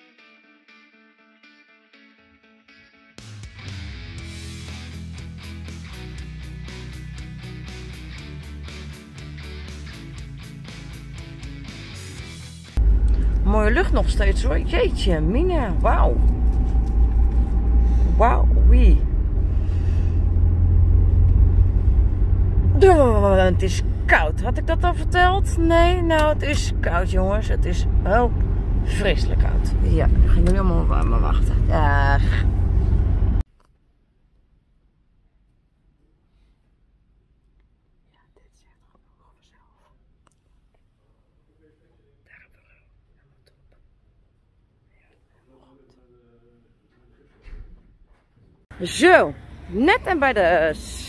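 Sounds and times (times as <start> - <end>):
guitar music: 0.0 - 16.8
car interior rumble while driving: 12.8 - 33.4
low room hum: 12.8 - 33.4
person whispering: 38.1 - 40.0, 42.2 - 43.5.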